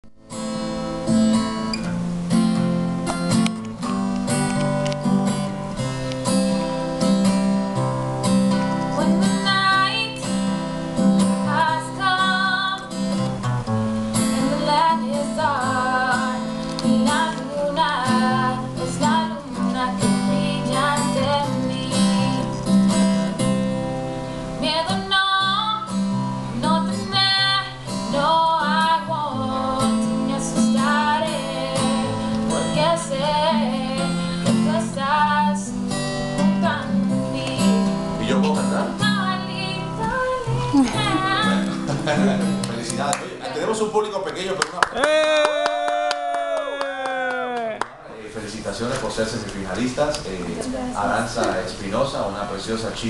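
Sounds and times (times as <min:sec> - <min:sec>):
acoustic guitar strumming chords: 0:00.2 - 0:44.2
woman singing: 0:08.9 - 0:10.4, 0:11.4 - 0:13.0, 0:14.2 - 0:22.6, 0:24.6 - 0:35.8, 0:36.4 - 0:38.2, 0:39.0 - 0:41.8.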